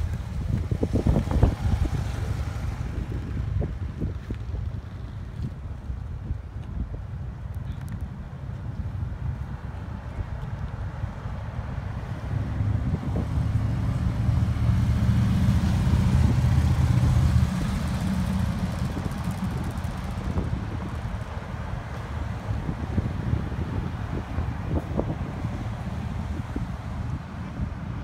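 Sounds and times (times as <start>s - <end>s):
cars driving slowly past: 0.0s - 28.0s.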